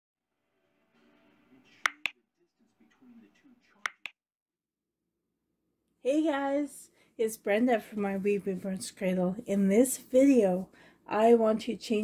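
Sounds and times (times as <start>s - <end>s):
faint muffled voice: 1.6s - 3.8s
sharp snaps: 1.9s - 2.2s, 3.9s - 4.2s.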